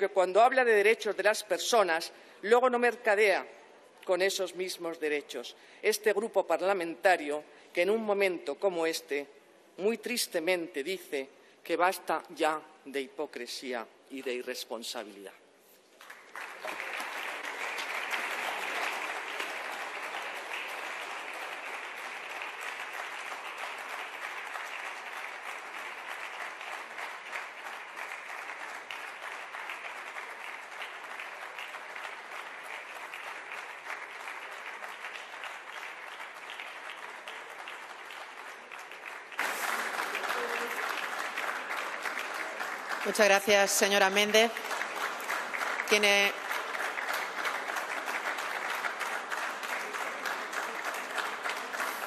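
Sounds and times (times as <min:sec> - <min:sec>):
audience applause: 0:16.0 - 0:52.0.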